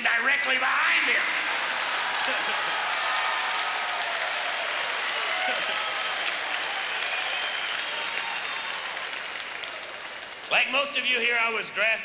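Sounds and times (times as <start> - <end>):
audience laughing: 1.3 - 3.0
audience applauding: 1.4 - 11.3.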